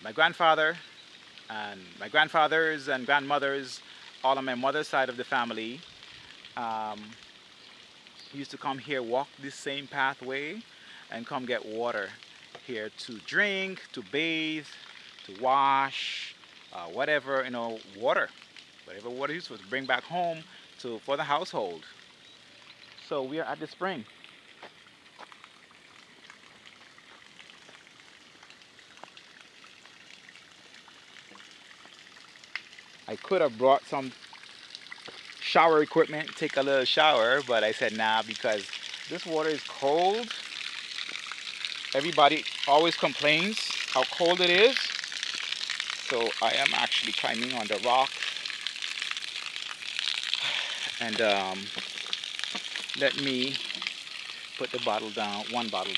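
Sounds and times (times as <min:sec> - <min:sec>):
spring water trickling and dripping: 0:00.0 - 0:55.9
plastic bottles crackling: 0:37.2 - 0:55.9.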